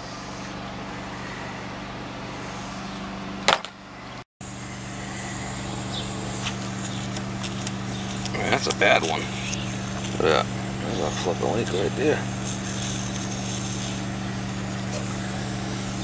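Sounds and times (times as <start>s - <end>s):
air conditioning hum: 0.0s - 16.0s.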